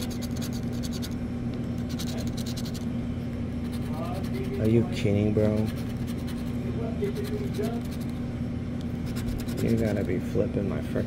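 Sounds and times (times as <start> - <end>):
scratching lottery ticket coating: 0.0 - 1.2, 1.8 - 2.8, 3.6 - 8.2, 9.0 - 10.4
steady low hum: 0.0 - 11.0.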